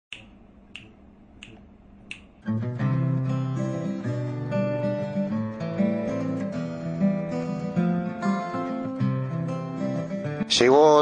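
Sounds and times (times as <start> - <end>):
finger snaps: 0.1 - 2.5.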